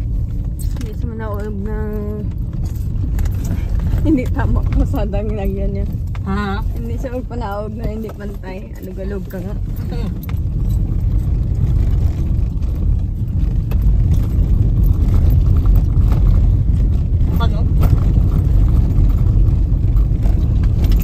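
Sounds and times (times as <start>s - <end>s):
road rumble inside moving vehicle: 0.0s - 21.0s
wind rumble: 0.0s - 21.0s.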